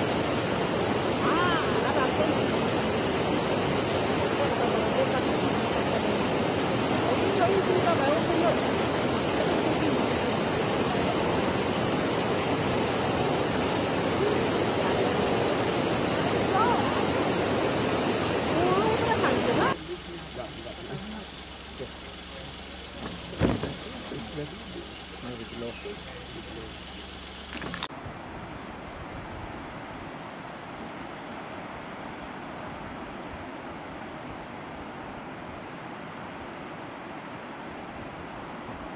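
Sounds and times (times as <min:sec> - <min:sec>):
whitewater river rushing over boulders: 0:00.0 - 0:19.8
vehicle engine idling: 0:00.0 - 0:27.9.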